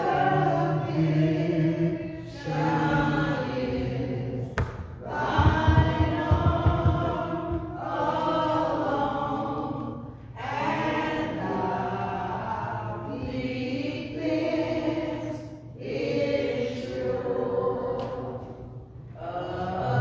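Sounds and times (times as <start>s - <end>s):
congregation singing a hymn: 0.0s - 20.0s
low thumps: 4.6s - 7.9s.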